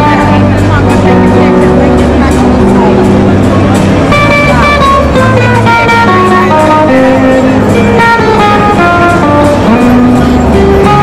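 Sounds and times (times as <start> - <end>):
bass line: 0.0 - 11.0
country band music: 0.0 - 11.0
nylon-string acoustic guitar: 0.0 - 11.0.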